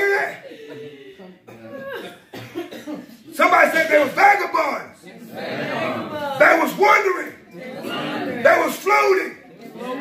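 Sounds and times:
man preaching loudly: 0.0s - 0.5s, 3.3s - 5.0s, 6.4s - 7.4s, 8.4s - 9.4s.

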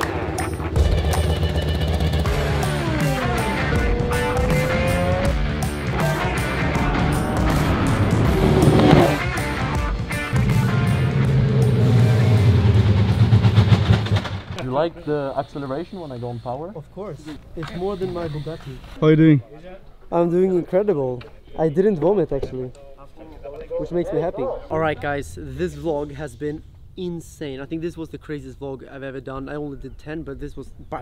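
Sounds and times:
racing car engine revving: 0.0s - 14.5s
electronic music with steady beat: 0.4s - 11.2s.

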